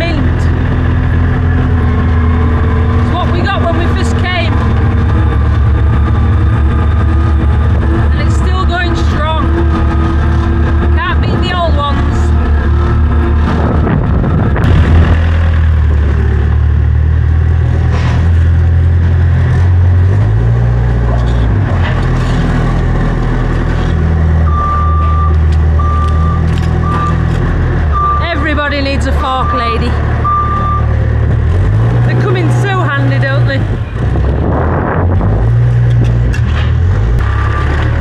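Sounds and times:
diesel engines running: 0.0 - 38.0
reversing alarm beeping: 24.4 - 27.2, 27.9 - 31.0.

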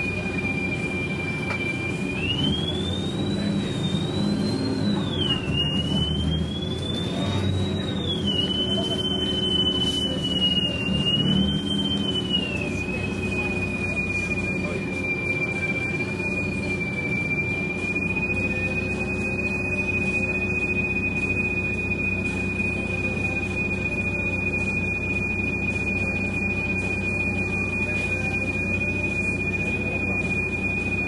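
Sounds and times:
low mechanical hum: 0.0 - 31.0
thin high-pitched whine: 6.8 - 31.0.

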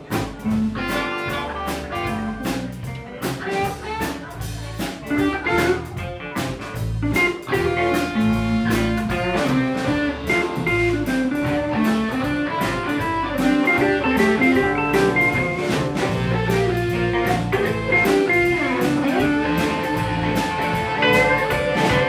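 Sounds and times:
bass guitar: 0.0 - 22.0
drum kit beat: 0.0 - 22.0
electric guitar lead lines: 0.0 - 22.0.

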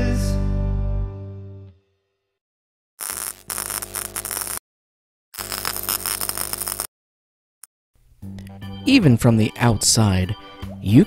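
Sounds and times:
static noise glitch bursts: 3.0 - 4.6, 5.4 - 6.9.

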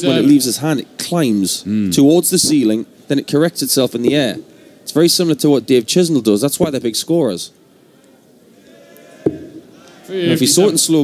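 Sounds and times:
faint crowd murmur: 0.0 - 3.1, 7.5 - 11.0.

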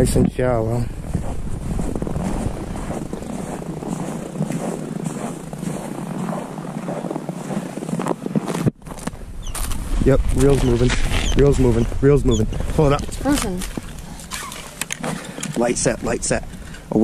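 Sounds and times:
microphone rustle: 0.0 - 17.0
footsteps crunching through snow: 0.6 - 16.2.

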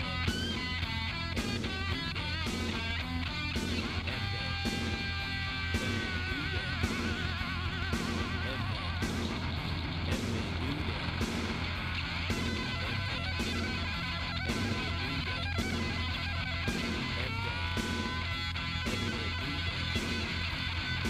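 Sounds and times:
bass guitar: 0.0 - 21.0
distorted electric guitar lead: 0.0 - 21.0
drums: 0.0 - 21.0.

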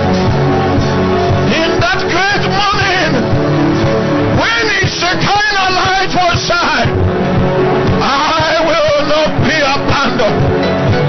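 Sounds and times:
instrumental backing music: 0.0 - 11.0.

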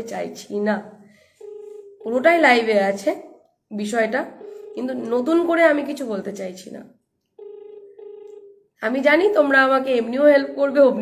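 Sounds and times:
woman speaking: 0.0 - 1.0, 2.0 - 7.0, 8.8 - 11.0
telephone call tone: 1.2 - 3.0, 4.0 - 6.0, 7.4 - 8.7.

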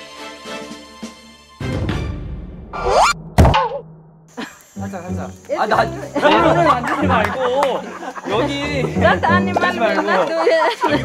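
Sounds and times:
rising squeal effect: 2.7 - 3.8
heavy thunk: 3.2 - 4.3
woman laughing: 4.4 - 4.7, 6.2 - 11.0.

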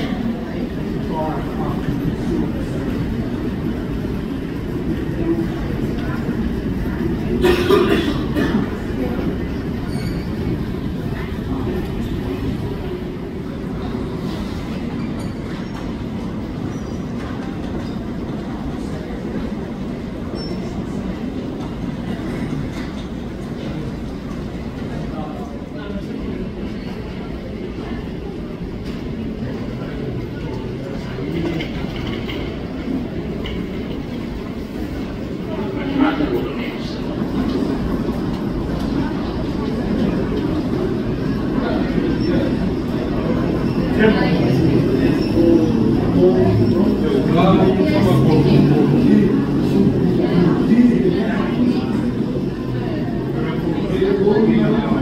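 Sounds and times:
faint voices: 0.0 - 55.0
low rumble of airport ambience: 0.0 - 55.0.

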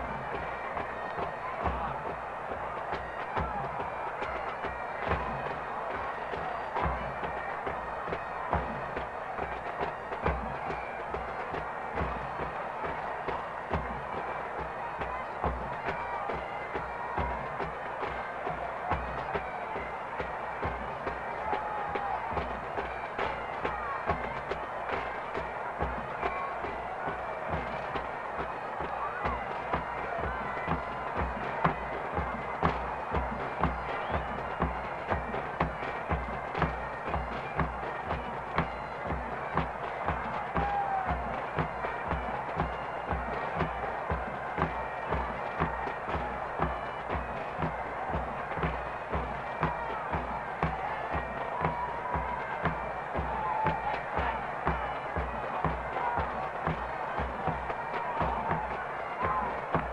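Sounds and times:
bagpipes: 0.0 - 59.9
bass drum beat: 0.0 - 59.9.

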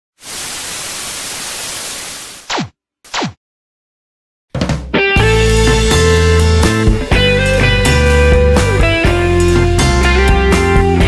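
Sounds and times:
television static hiss: 0.2 - 2.4.

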